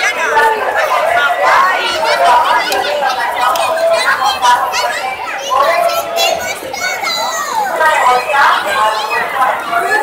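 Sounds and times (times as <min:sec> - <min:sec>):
crowd of children and adults chattering: 0:00.0 - 0:10.0.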